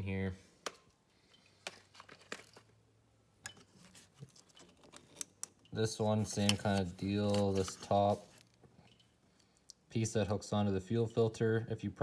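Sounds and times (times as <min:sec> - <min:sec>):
hands handling plastic fittings: 0:00.6 - 0:02.8, 0:03.4 - 0:09.8.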